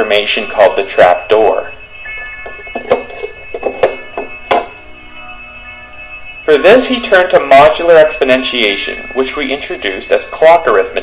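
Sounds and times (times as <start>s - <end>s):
soft electronic music: 0.0s - 11.0s.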